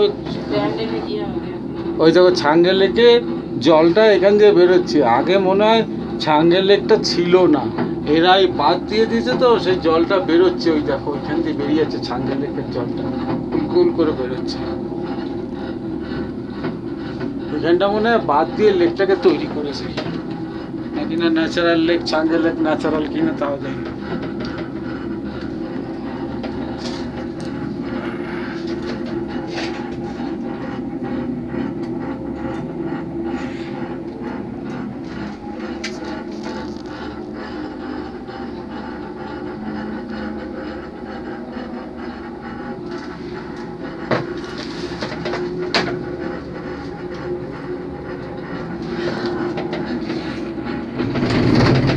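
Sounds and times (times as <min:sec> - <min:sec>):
cable car mechanical hum: 0:00.0 - 0:51.9.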